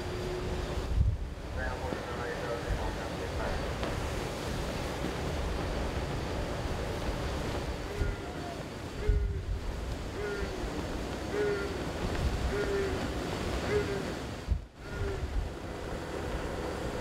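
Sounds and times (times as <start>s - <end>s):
sea water rushing and breaking: 0.0s - 17.0s
wind buffeting microphone: 0.0s - 17.0s.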